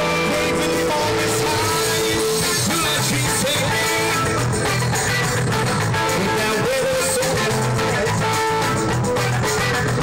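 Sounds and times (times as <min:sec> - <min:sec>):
live band playing instrumental: 0:00.0 - 0:10.0.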